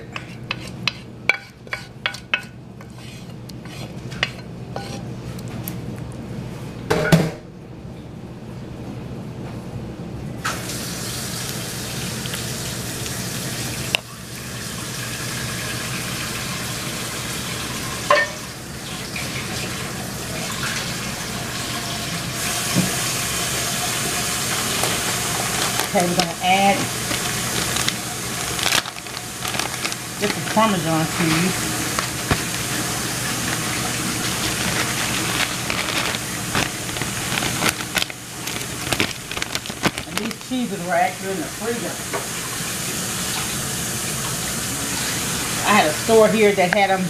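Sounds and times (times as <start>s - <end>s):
spoon scraping and tapping a pan: 0.0s - 5.0s
water running from a tap: 10.4s - 46.9s.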